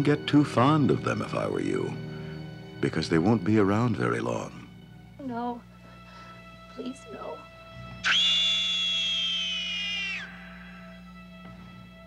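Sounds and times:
suspense music drone: 0:00.0 - 0:12.0
woman screaming: 0:08.0 - 0:10.6.

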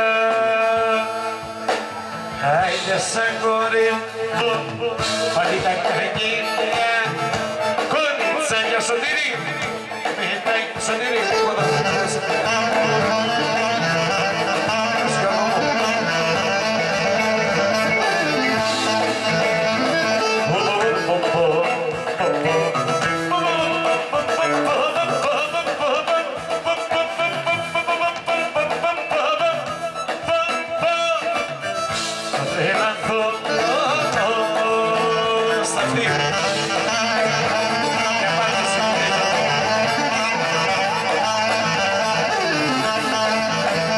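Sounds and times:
folk band over speakers: 0:00.0 - 0:43.9
clarinet melody: 0:00.8 - 0:10.1, 0:10.9 - 0:43.9.

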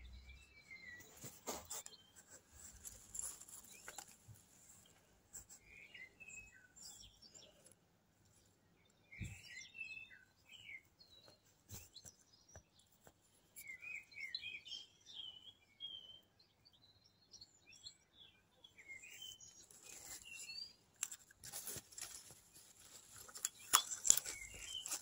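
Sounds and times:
songbird twittering: 0:08.8 - 0:12.8, 0:13.6 - 0:20.8.

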